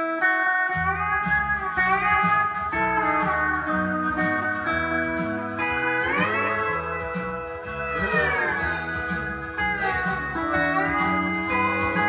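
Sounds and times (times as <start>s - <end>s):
pedal steel guitar sliding chord: 0.2s - 12.0s
bass notes: 0.7s - 12.0s.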